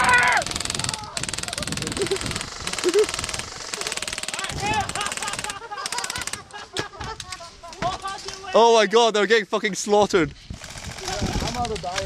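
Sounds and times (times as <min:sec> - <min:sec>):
people shouting: 0:00.0 - 0:01.6, 0:04.3 - 0:05.4
airsoft rifles firing full-auto: 0:00.4 - 0:06.5, 0:10.6 - 0:11.3.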